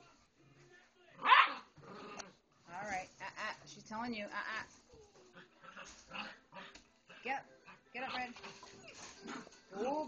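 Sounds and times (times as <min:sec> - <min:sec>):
puppies play-fighting: 0:04.8 - 0:10.0.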